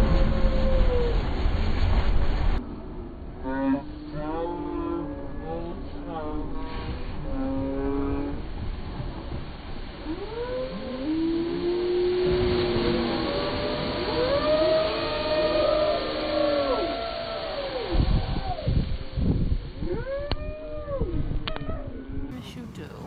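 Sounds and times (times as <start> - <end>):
people screaming: 0.0 - 1.3, 10.3 - 19.0, 19.8 - 21.9
water wave crashing: 0.0 - 2.6, 5.8 - 21.9.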